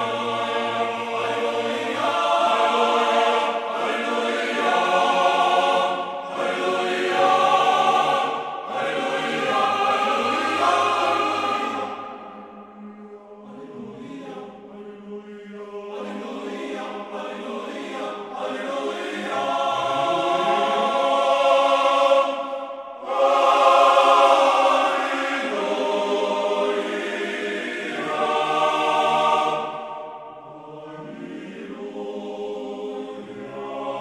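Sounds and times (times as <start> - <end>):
choir singing slow chant: 0.0 - 34.0.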